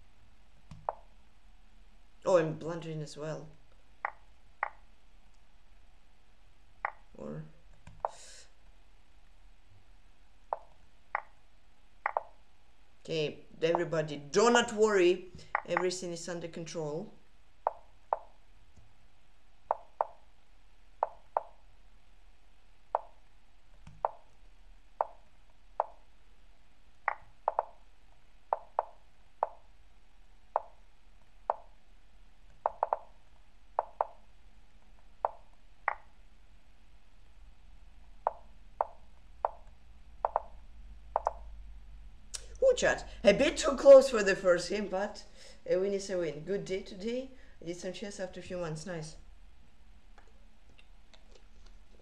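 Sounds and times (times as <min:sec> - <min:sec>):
chess move clicking taps: 0:00.7 - 0:01.1, 0:07.8 - 0:08.3, 0:12.0 - 0:12.3, 0:15.3 - 0:16.0, 0:19.7 - 0:20.2, 0:21.0 - 0:21.6, 0:23.8 - 0:24.3, 0:25.0 - 0:26.0, 0:27.1 - 0:27.8, 0:28.5 - 0:29.6, 0:30.6 - 0:30.8, 0:32.5 - 0:33.1, 0:33.8 - 0:34.2, 0:38.3 - 0:40.5, 0:41.2 - 0:41.4.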